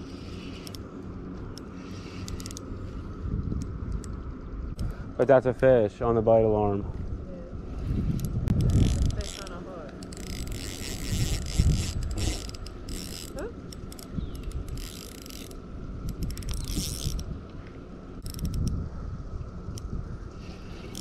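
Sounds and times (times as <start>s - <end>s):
fishing reel gears whirring: 0.0s - 4.1s, 7.7s - 17.4s, 18.2s - 18.8s, 19.6s - 21.0s.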